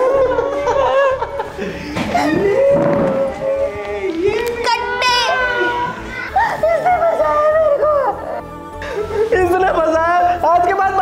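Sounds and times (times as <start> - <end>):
light background music: 0.0 - 11.0
young people's wordless exclamations: 2.2 - 8.2.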